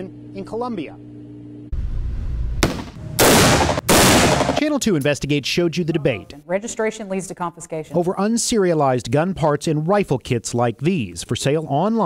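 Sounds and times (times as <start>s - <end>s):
rifle shot ringing off walls: 2.6s - 4.6s.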